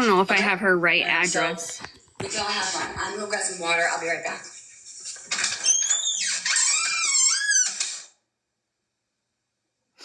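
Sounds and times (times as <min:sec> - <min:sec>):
door hinge squeaking: 0:05.5 - 0:08.1.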